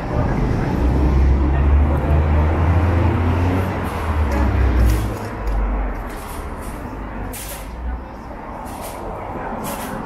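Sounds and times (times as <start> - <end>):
city traffic noise: 0.0 - 10.0
vehicle engine rumbling: 0.0 - 10.0.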